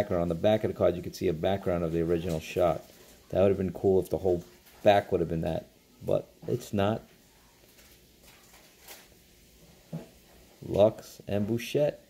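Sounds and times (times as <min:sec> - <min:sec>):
trading cards rustling: 0:07.6 - 0:09.2.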